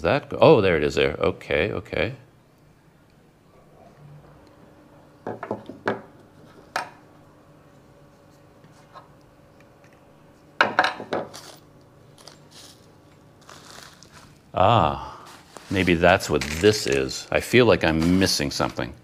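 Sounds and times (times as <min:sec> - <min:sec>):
plastic bag rustling: 0:11.3 - 0:17.3.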